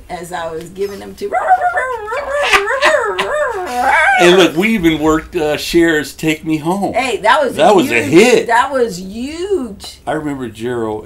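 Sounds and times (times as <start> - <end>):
man laughing in high voice: 1.7 - 4.5.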